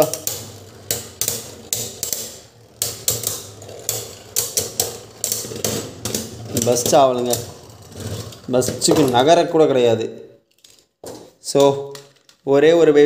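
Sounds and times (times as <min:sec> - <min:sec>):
spinning tops clashing: 0:00.0 - 0:07.6.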